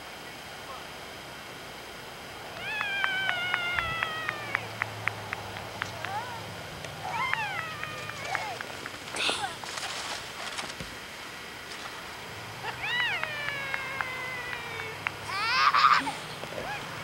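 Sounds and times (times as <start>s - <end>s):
child shrieking: 2.6s - 4.7s, 7.0s - 8.6s, 12.8s - 16.8s
child squealing: 2.6s - 4.7s, 7.0s - 8.6s, 12.8s - 16.8s.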